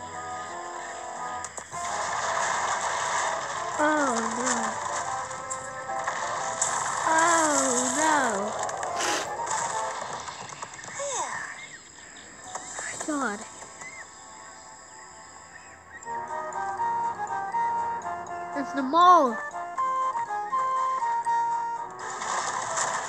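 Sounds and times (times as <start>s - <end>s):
cartoon music: 16.0s - 22.0s.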